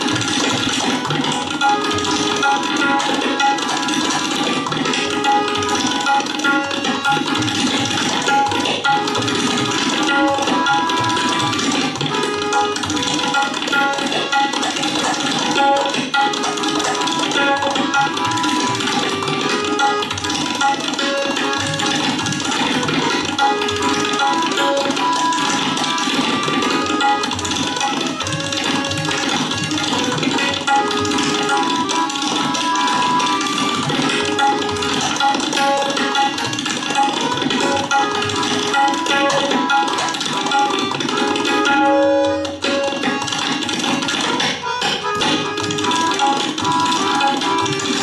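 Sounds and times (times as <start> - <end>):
harmonium melody: 0.0 - 48.0
tabla drumming: 0.0 - 48.0.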